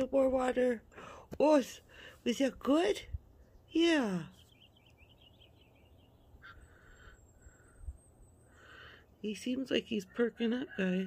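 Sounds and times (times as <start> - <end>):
small bird twittering: 3.6 - 9.0.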